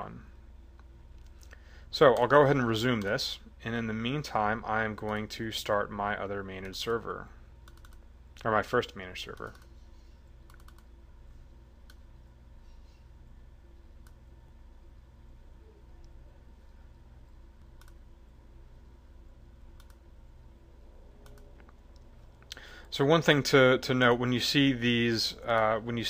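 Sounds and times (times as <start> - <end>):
low electrical hum: 0.0 - 26.0.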